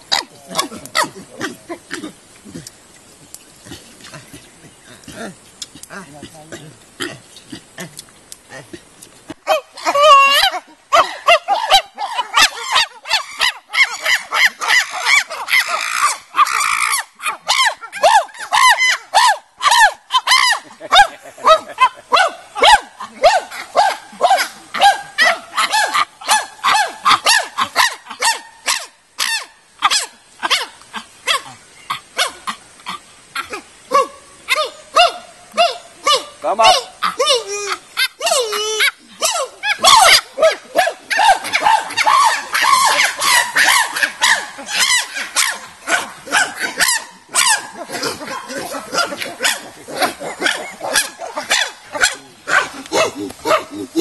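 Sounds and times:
chimpanzee calling: 0.0s - 2.8s, 3.7s - 54.0s.

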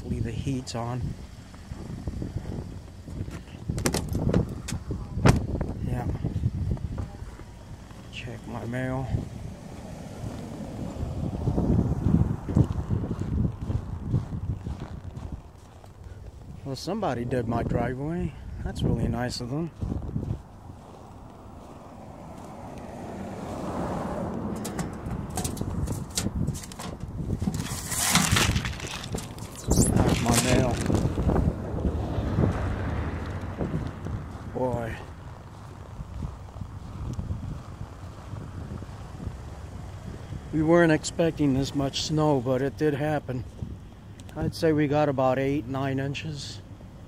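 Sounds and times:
wind rumble on microphone: 0.0s - 44.8s
truck door clicks and knocks: 3.7s - 5.5s, 24.4s - 29.4s
footsteps crunching on snow: 12.0s - 16.7s, 19.6s - 22.6s, 27.4s - 31.5s, 33.7s - 39.1s.

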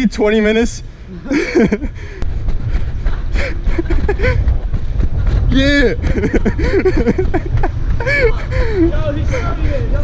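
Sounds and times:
voice or laughter: 1.1s - 2.0s, 5.6s - 8.9s
wind buffeting microphone: 1.3s - 10.0s.

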